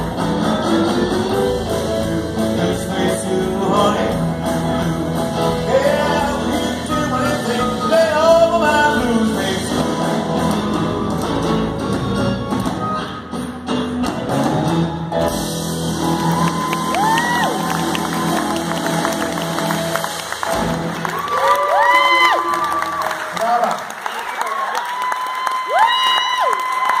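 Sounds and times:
rock band playing: 0.0 - 23.3
audience applauding: 15.9 - 27.0.

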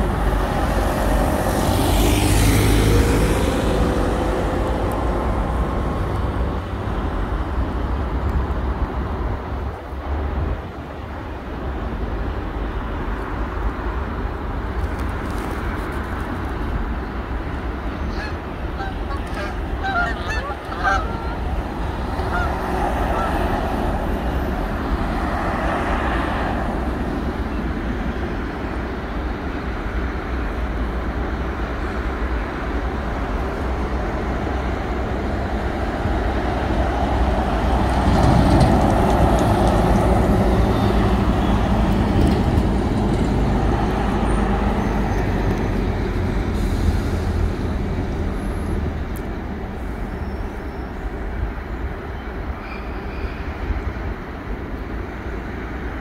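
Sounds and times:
car passing: 0.0 - 10.4, 12.5 - 51.3
rumble of road traffic: 0.0 - 56.0.

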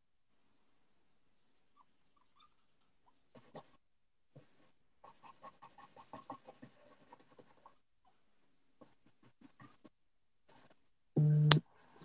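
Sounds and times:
pen scratching on paper: 4.5 - 7.8.

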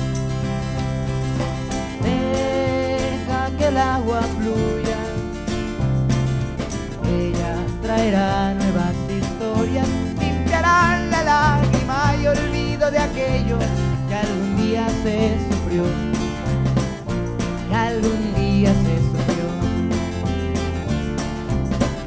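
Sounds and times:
bass guitar: 0.0 - 22.0
frame drum with jingles: 0.0 - 22.0
guitar: 0.0 - 22.0
keyboard playing: 0.0 - 22.0.

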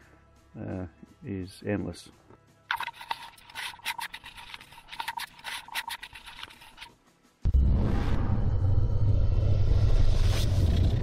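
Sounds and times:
hand rubbing on microphone: 2.7 - 7.0.

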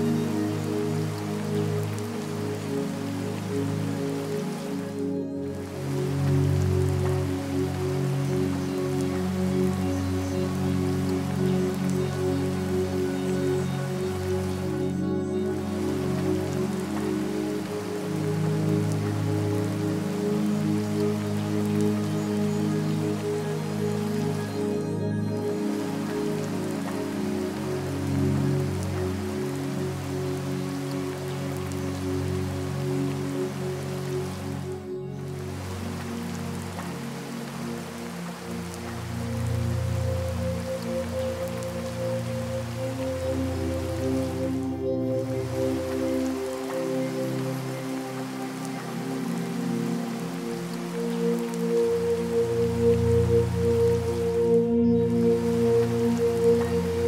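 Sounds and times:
ambient music held chords: 0.0 - 57.0
falling rain: 0.0 - 57.0.

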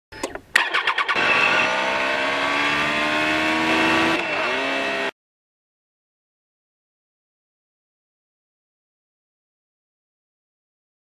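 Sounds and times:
motorcycle engine starting and running: 0.1 - 5.1.

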